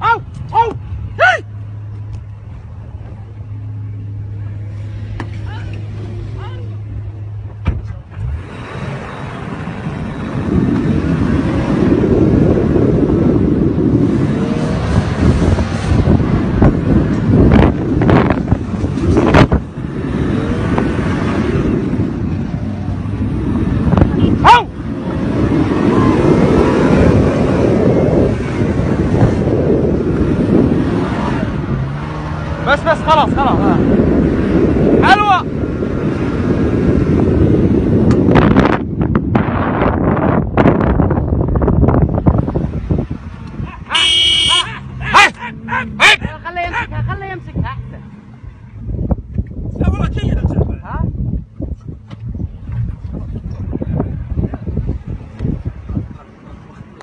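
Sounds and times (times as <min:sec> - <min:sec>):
vehicle driving noise: 0:00.0 - 0:57.0
vehicle engine hum: 0:00.0 - 0:57.0.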